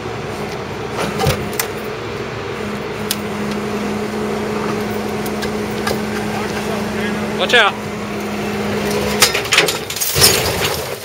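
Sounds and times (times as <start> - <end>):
car body crashing down: 9.2 - 11.0.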